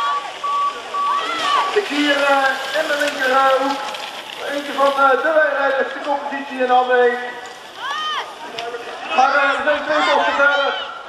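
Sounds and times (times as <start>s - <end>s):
faint crowd noise: 0.0s - 11.0s.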